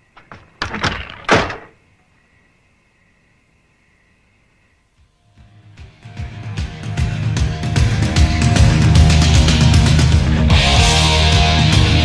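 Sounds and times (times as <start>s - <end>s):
heavy knocks and thuds: 0.2s - 1.8s.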